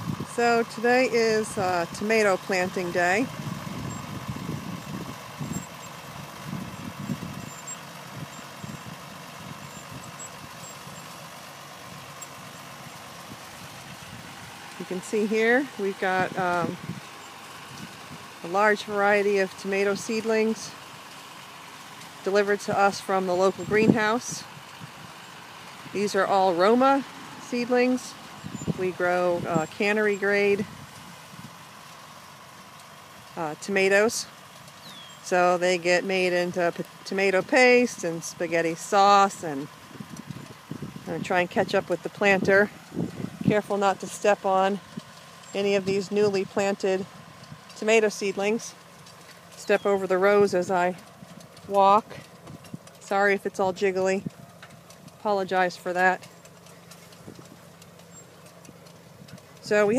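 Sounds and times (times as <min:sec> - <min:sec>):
diesel tractor engine running: 0:00.0 - 0:59.9.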